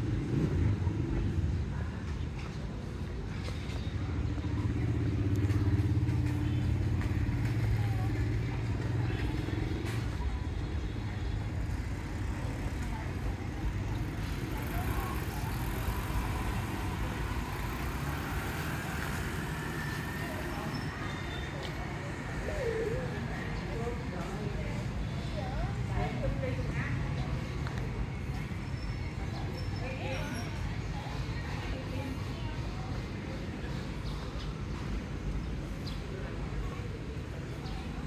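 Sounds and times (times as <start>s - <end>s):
faint distant voices: 0.0s - 38.0s
street background: 0.0s - 38.0s.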